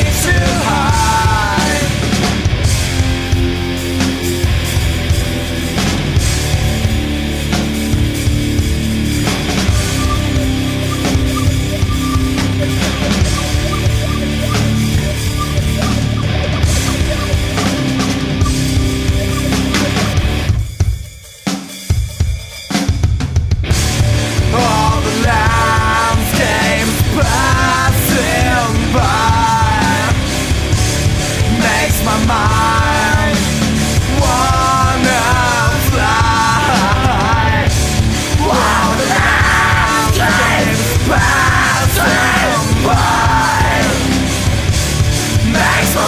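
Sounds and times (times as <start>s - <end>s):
shouted vocals: 0.0s - 2.1s, 31.4s - 44.4s, 45.3s - 46.0s
rock band playing: 0.0s - 46.0s.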